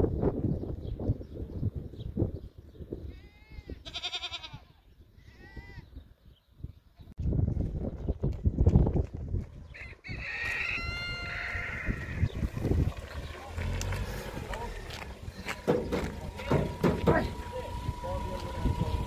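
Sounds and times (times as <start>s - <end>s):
farm animals calling: 3.1s - 6.0s, 9.8s - 19.0s
loud low thuds and rumble: 15.1s - 19.0s.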